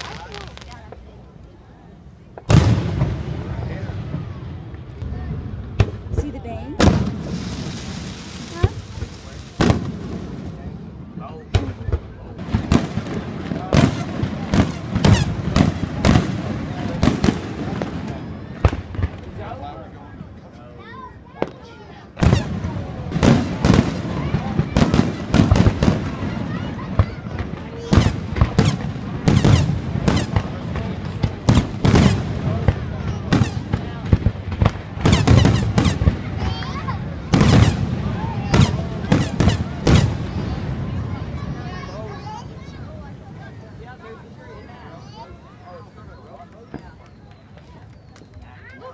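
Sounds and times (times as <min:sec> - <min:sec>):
fireworks bursting: 0:00.0 - 0:19.8, 0:21.4 - 0:44.1
fireworks crackling: 0:00.0 - 0:20.5, 0:21.2 - 0:48.9
people's voices: 0:00.0 - 0:48.9.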